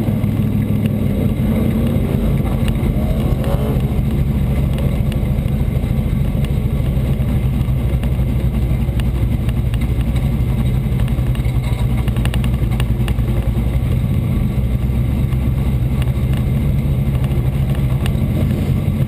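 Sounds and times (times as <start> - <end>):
race car engine rumbling: 0.0 - 19.0.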